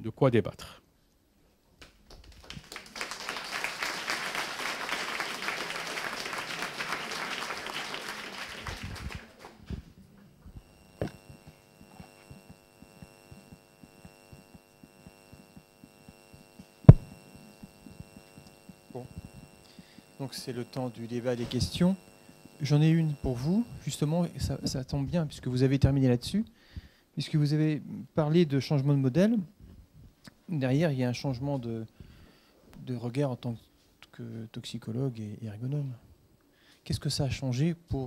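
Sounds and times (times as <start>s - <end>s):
steady electrical hum: 0.0s - 38.0s
audience applauding: 2.1s - 9.5s.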